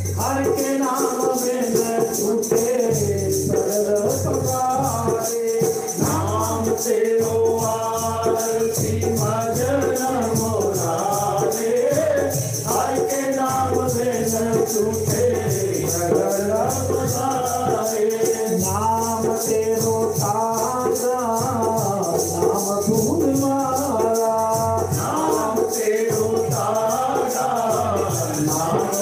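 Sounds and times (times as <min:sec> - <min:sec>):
men singing devotional song: 0:00.0 - 0:29.0
rhythmic jingling percussion: 0:00.0 - 0:29.0
shaker rattle: 0:00.0 - 0:29.0.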